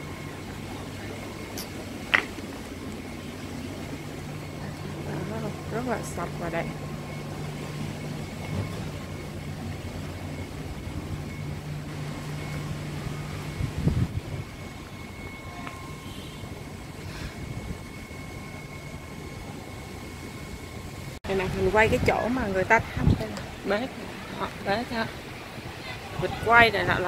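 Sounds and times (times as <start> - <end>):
low machine hum: 0.0 - 27.0.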